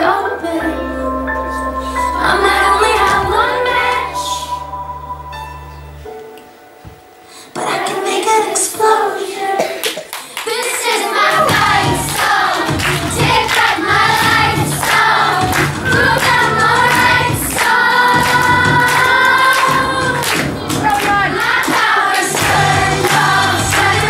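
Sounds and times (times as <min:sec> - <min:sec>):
children singing together: 0:00.0 - 0:05.6, 0:07.5 - 0:24.0
low instrumental accompaniment: 0:00.0 - 0:07.2, 0:11.5 - 0:24.0.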